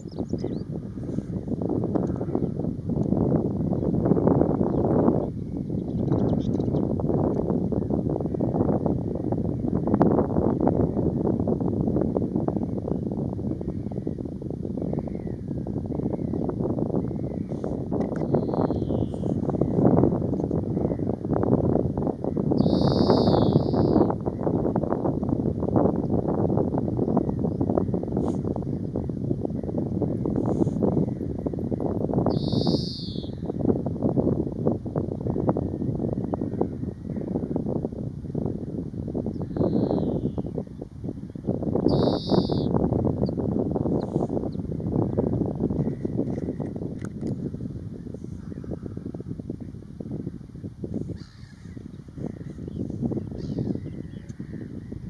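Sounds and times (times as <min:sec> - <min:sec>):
wind buffeting microphone: 0:00.0 - 0:55.0
bird calling: 0:22.6 - 0:24.0, 0:32.3 - 0:33.4, 0:41.9 - 0:42.7, 0:51.2 - 0:52.5.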